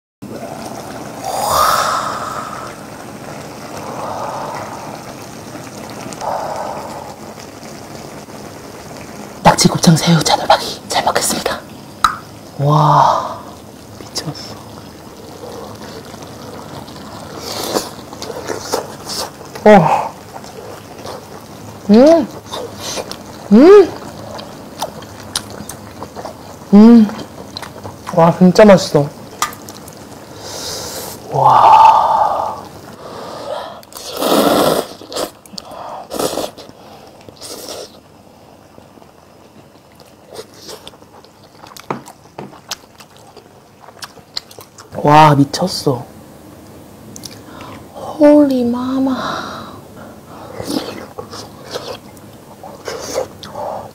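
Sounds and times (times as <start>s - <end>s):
person chewing and slurping stew: 14.9s - 21.5s, 22.3s - 28.2s, 33.8s - 38.1s, 39.0s - 45.0s, 50.5s - 53.9s
slurping noodles: 15.2s - 21.4s, 30.4s - 38.1s, 50.5s - 53.9s
chewing with wet clicks: 24.0s - 28.2s, 39.8s - 45.0s, 47.1s - 47.4s.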